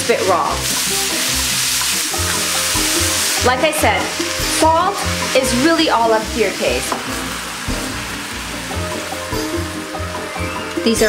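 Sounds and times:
background music with bass line: 0.0 - 11.0
mushrooms sizzling in oil: 0.0 - 11.0.

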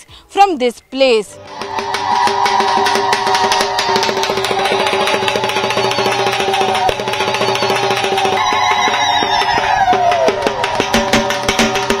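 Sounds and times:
drum beaten in fast rhythm: 1.6 - 12.0.

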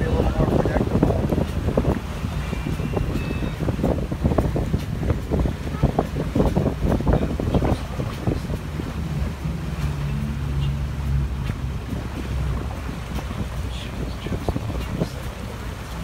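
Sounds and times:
boat engine humming: 0.0 - 16.0
water rushing past hull: 0.0 - 16.0
wind buffeting microphone: 0.0 - 16.0.

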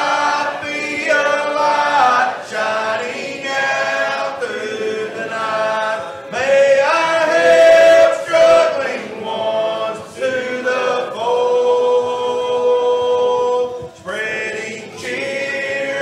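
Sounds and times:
men singing gospel in harmony: 0.0 - 16.0.

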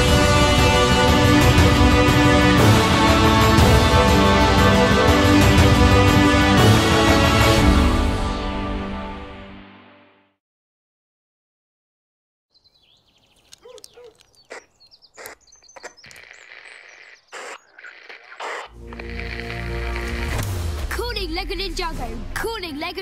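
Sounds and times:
advert music: 0.0 - 10.2, 18.5 - 23.0
person speaking over music: 20.8 - 23.0.

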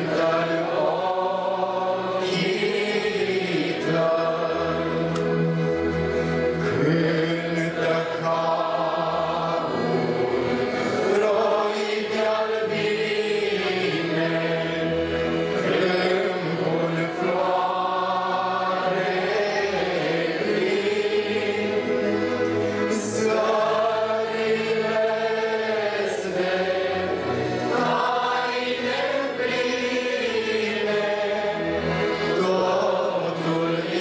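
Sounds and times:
choir singing a slow hymn: 0.0 - 34.0.

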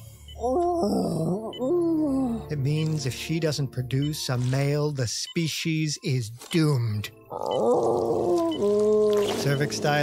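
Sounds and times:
cartoon monster groaning: 0.4 - 2.4, 7.3 - 9.2.

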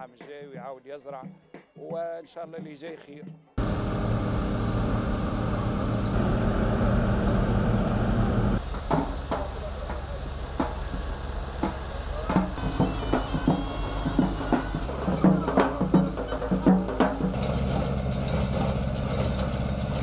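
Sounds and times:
combine harvester engine drone: 3.6 - 20.0
grain pouring hiss: 3.6 - 20.0.

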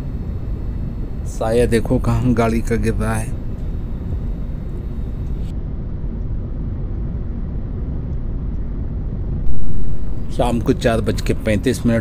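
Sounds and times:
wind noise: 0.0 - 12.0.

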